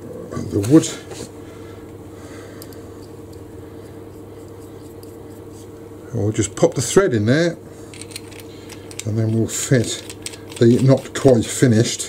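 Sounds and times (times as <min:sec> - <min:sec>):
steady low hum: 0:00.0 - 0:12.0
small clicks of handled parts: 0:07.9 - 0:11.4.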